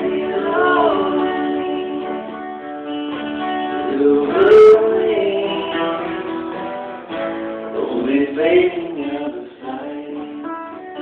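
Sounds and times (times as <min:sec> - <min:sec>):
woman singing: 0:00.0 - 0:02.5, 0:03.8 - 0:06.2
acoustic guitars strumming: 0:00.0 - 0:11.0.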